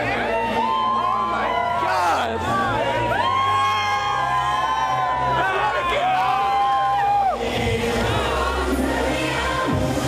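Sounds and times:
crowd cheering and singing along: 0:00.0 - 0:10.0.

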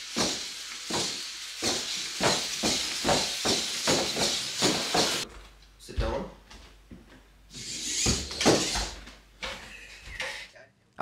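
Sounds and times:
hissy servo whirr: 0:07.5 - 0:08.9.

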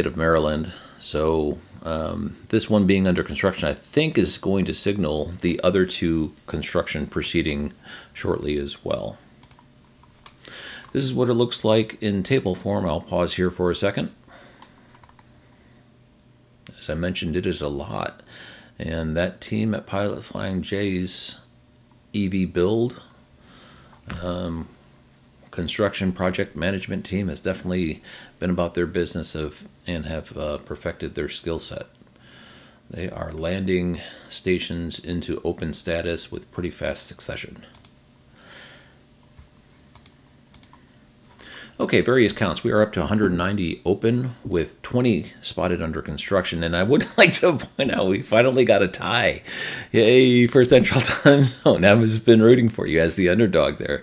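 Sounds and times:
faint keyboard clicks: 0:14.6 - 0:15.3.

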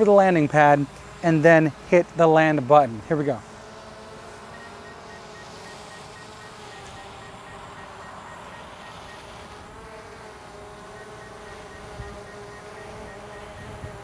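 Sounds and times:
drone propellers buzzing: 0:00.4 - 0:14.0.

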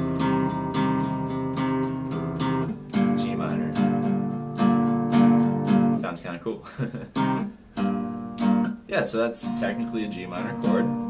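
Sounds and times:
acoustic guitar chords picked: 0:00.0 - 0:11.0.

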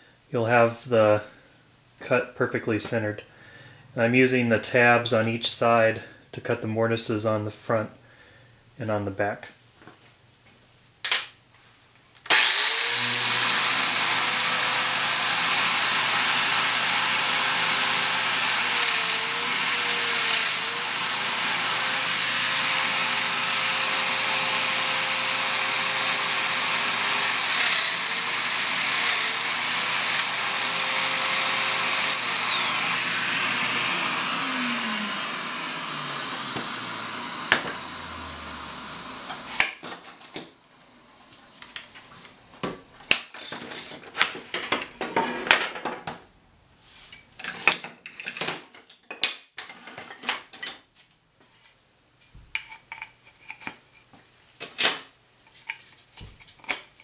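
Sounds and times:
power tool motor whining: 0:12.3 - 0:39.8.

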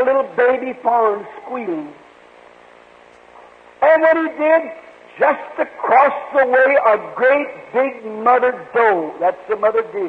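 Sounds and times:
man speaking: 0:00.0 - 0:02.0, 0:03.8 - 0:10.0
faint steady hum and hiss: 0:00.0 - 0:10.0.

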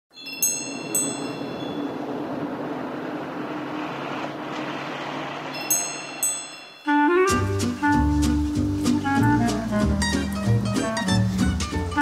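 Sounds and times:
rushing background noise: 0:00.2 - 0:12.0
bright chime strikes: 0:05.6 - 0:06.9.

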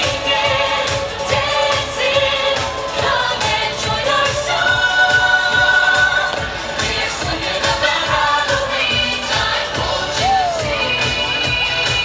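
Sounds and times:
pop song with group singing: 0:00.0 - 0:12.0.

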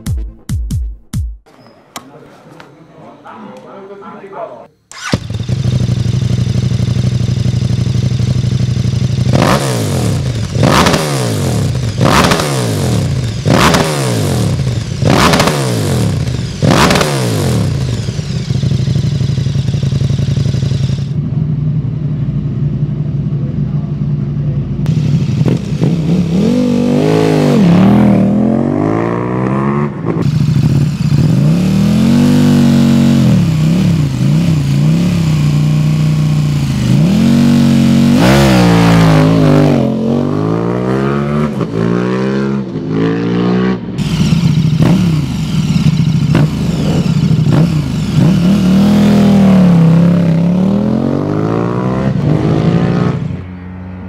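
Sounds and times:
motorcycle engine idling: 0:04.9 - 0:10.8, 0:16.0 - 0:26.7, 0:30.2 - 0:32.2, 0:32.9 - 0:38.0, 0:44.0 - 0:49.2
motorcycle engine revving: 0:04.9 - 0:54.0.

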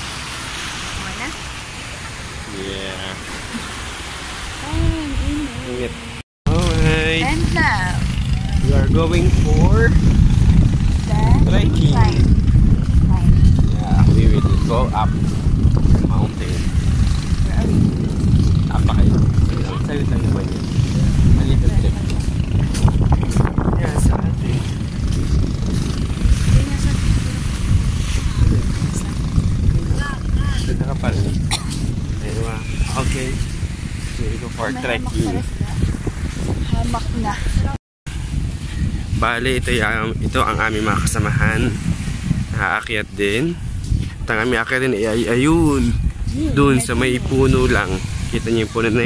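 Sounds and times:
wind buffeting microphone: 0:00.0 - 0:49.0
faint voices talking: 0:04.6 - 0:09.8.

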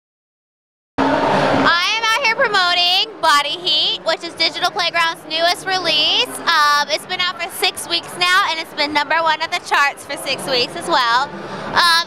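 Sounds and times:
background hubbub: 0:01.0 - 0:12.0.

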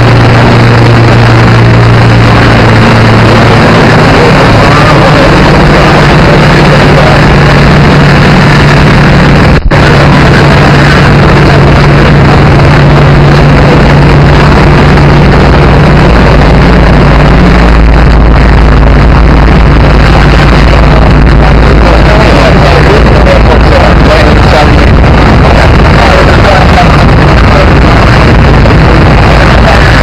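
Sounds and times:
vehicle engine noise: 0:00.0 - 0:30.0.

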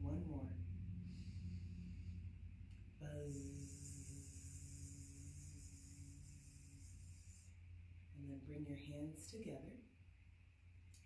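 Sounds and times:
woman humming low note: 0:03.0 - 0:07.6
hissy buzz: 0:03.0 - 0:07.9.

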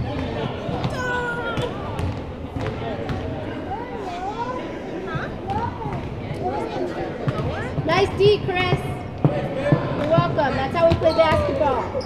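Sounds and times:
players and onlookers talking: 0:00.0 - 0:12.0.

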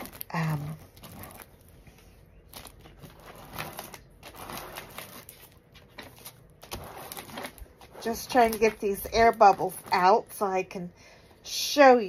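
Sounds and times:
plastic film rustling and crinkling: 0:00.0 - 0:10.8.

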